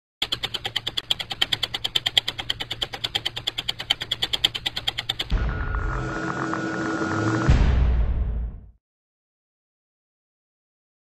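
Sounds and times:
ratchet-like mechanical clicking: 0:00.2 - 0:05.4.

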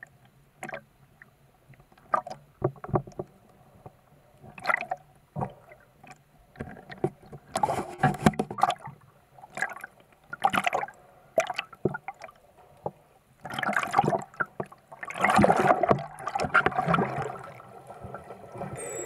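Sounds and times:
water splashing underwater: 0:13.4 - 0:19.0.

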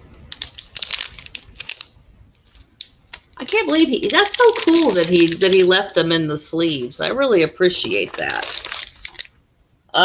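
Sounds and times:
plastic sleeve crinkling: 0:00.0 - 0:09.4.

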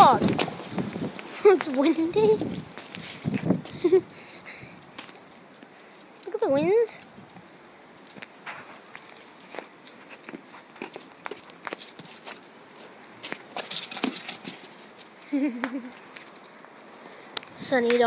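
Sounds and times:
footsteps on stone paving: 0:00.0 - 0:04.0, 0:07.2 - 0:15.1.

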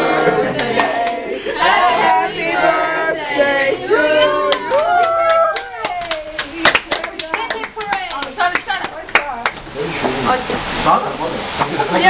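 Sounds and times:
people singing: 0:00.0 - 0:05.8
group clapping unevenly: 0:00.4 - 0:01.3, 0:04.2 - 0:09.7.

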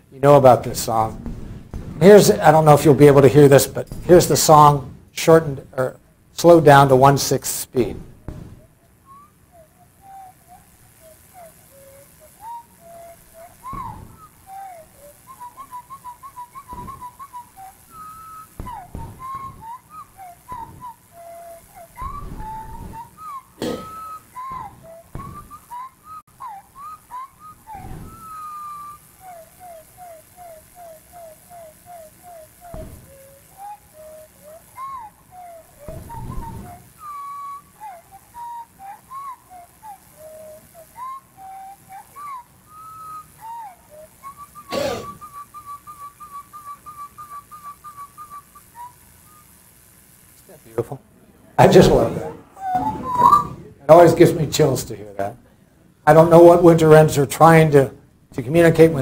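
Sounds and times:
slowed bird song over speakers: 0:07.8 - 0:49.8.

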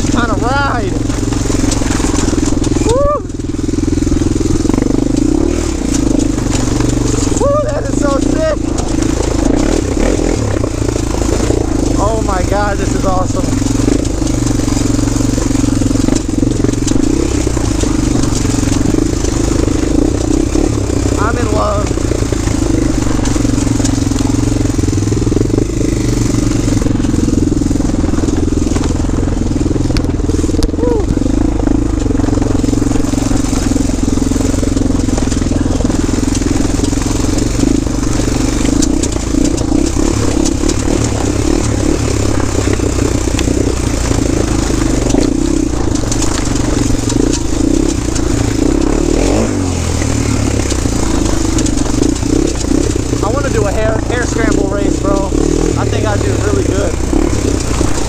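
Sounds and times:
quad bike engine running: 0:00.0 - 0:58.0.

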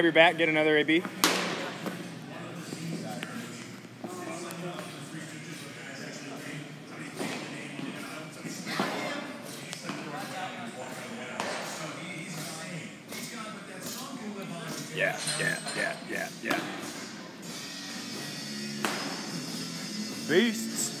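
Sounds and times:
people talking in echoing hall: 0:00.0 - 0:15.4.

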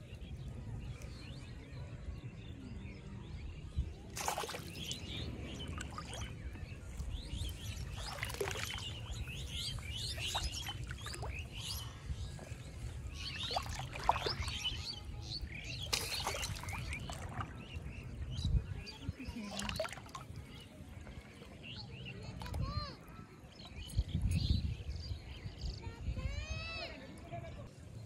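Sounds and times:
birds chirping: 0:03.9 - 0:26.0.

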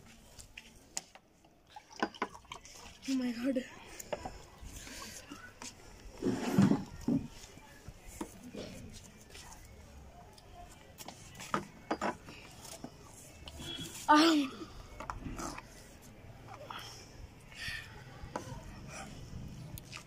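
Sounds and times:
breathing: 0:16.6 - 0:18.1.

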